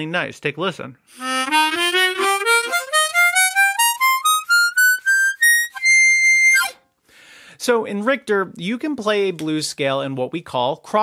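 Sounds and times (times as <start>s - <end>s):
harmonica playing a scale: 1.1s - 6.8s.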